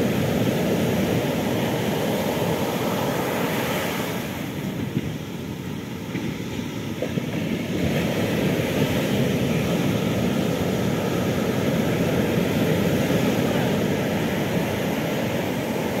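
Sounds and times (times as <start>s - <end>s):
surf breaking on beach: 0.0s - 5.0s, 7.5s - 16.0s.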